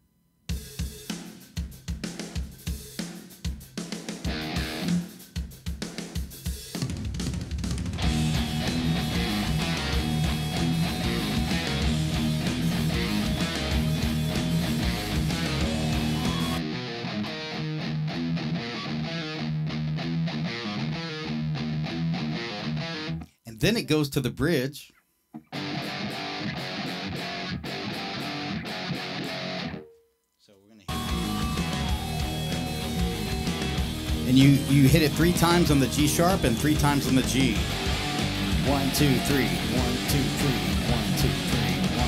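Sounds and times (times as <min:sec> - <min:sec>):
drum kit: 0:00.5 - 0:16.6, 0:30.9 - 0:42.0
electric guitar rock riff: 0:04.0 - 0:05.4, 0:06.8 - 0:23.3, 0:25.4 - 0:29.9, 0:30.9 - 0:42.0.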